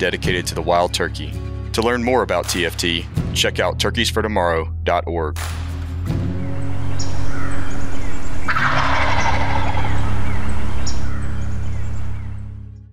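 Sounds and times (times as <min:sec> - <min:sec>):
low outro music: 0:05.8 - 0:12.9
wild turkey gobbling: 0:07.0 - 0:12.3.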